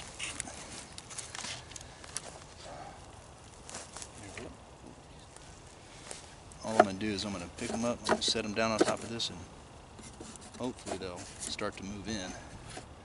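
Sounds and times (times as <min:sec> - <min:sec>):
twigs snapping: 0:00.0 - 0:02.5
dry brush rustling and crackling: 0:00.0 - 0:13.0.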